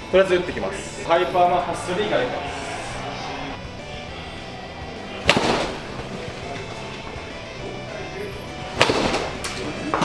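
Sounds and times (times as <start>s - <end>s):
bat hitting ball: 5.2s - 7.2s, 8.6s - 10.0s.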